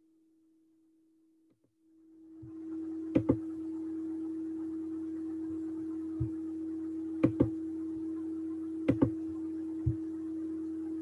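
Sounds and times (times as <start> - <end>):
steady pure-tone hum: 0.0 - 11.0.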